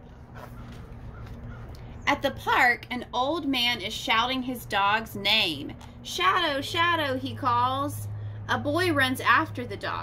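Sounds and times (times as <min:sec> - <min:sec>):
steady low hum: 0:00.0 - 0:10.0
book page turning: 0:00.1 - 0:01.6.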